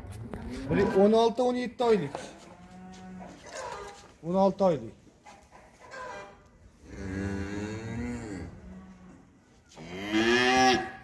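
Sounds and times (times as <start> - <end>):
bull mooing: 6.8 - 9.2, 9.8 - 11.0.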